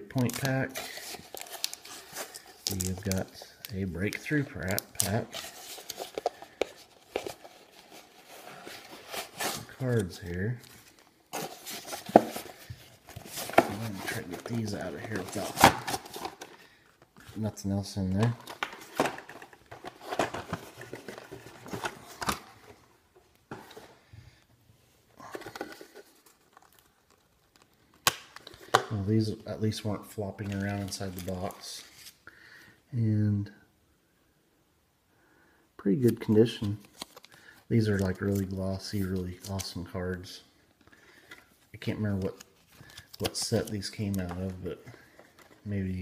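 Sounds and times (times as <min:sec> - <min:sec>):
packaging crinkling and tearing: 0:00.0 - 0:17.4, 0:25.3 - 0:28.9, 0:36.0 - 0:39.8, 0:42.1 - 0:45.6.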